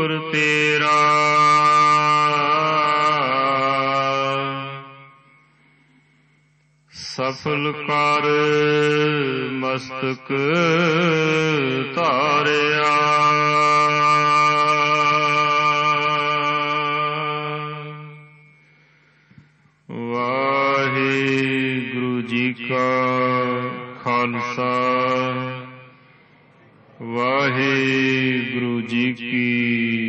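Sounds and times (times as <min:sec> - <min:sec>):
man chanting melodically: 0:00.0 - 0:05.4, 0:06.9 - 0:18.6, 0:19.9 - 0:30.0.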